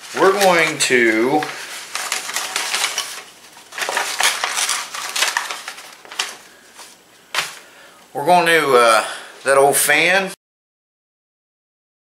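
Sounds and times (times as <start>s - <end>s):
envelope crinkling and tearing: 0.0s - 7.6s
paper rustling: 0.0s - 7.7s.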